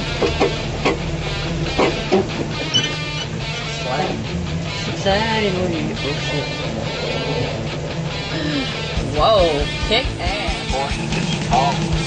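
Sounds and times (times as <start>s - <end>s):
strummed electric guitar: 0.0s - 12.0s.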